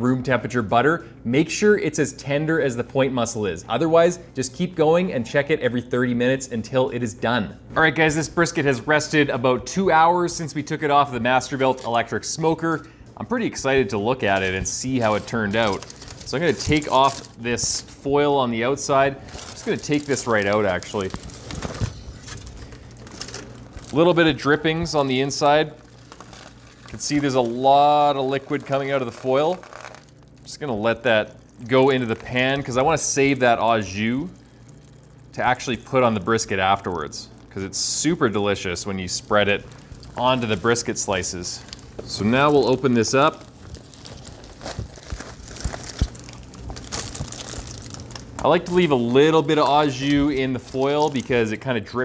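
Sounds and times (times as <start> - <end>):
aluminium foil crinkling: 14.2 - 51.7.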